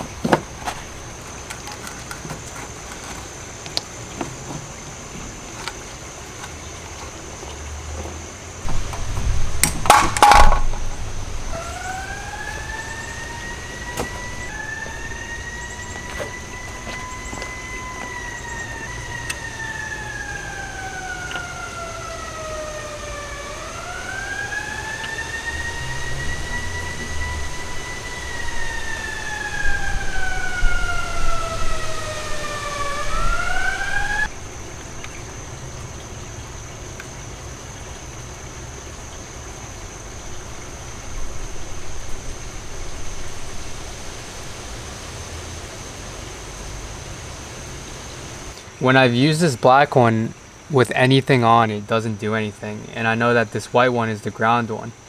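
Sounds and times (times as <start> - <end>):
faint high whine: 8.4 - 55.0
siren wailing: 8.7 - 34.5.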